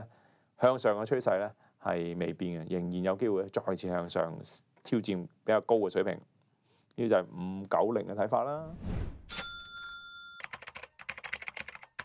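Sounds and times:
ringing chime: 0:09.3 - 0:10.6
keyboard typing clicks: 0:10.4 - 0:12.0.

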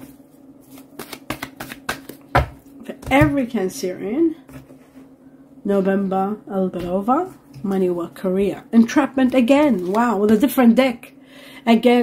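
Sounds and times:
cards shuffling and slapping: 0:00.0 - 0:02.6.

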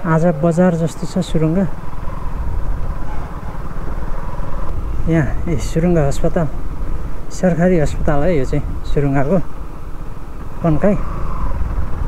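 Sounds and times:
motorcycle engine rumble: 0:00.0 - 0:12.0
wind on microphone: 0:01.7 - 0:12.0.

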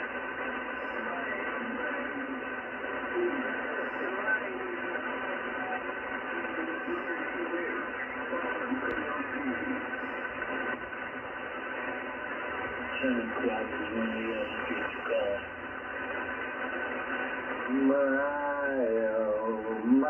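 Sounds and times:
receiver hiss: 0:00.0 - 0:20.0
thin radio voice: 0:12.8 - 0:15.5.

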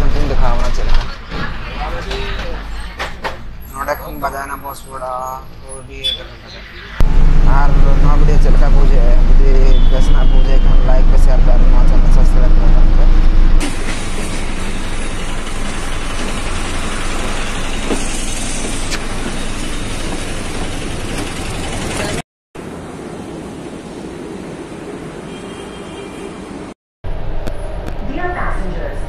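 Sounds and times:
traffic and street noise: 0:00.0 - 0:29.0
bus engine and road rumble: 0:07.0 - 0:22.2.

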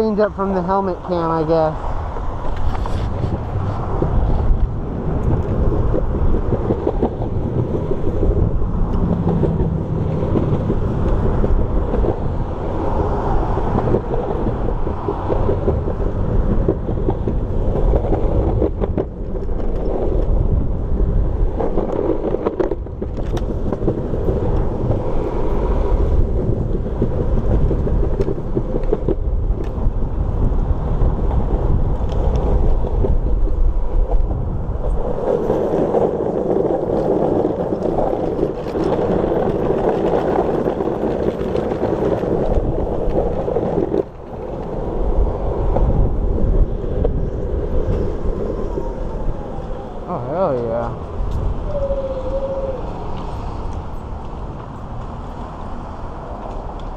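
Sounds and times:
road noise: 0:00.0 - 0:56.9
wind buffeting microphone: 0:00.0 - 0:56.9.

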